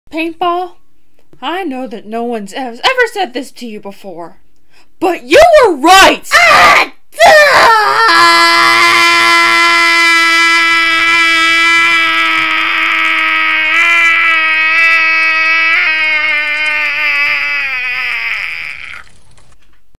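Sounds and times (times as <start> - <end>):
person screaming: 6.3 - 19.2.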